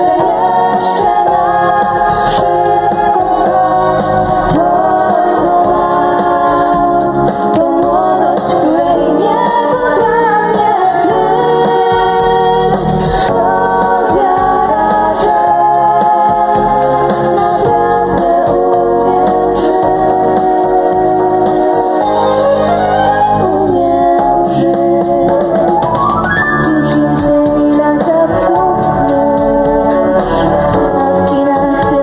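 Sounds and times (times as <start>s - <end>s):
small band playing: 0.0s - 32.0s
women singing into microphones: 0.0s - 32.0s.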